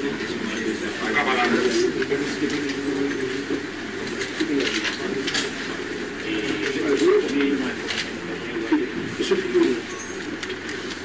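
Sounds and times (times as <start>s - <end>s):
faint background voices: 0.0s - 11.0s.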